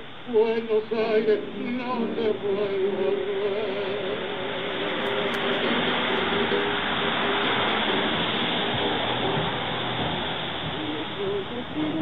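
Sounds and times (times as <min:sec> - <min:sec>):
faint music: 0:00.0 - 0:12.0
steady rushing noise: 0:00.0 - 0:12.0.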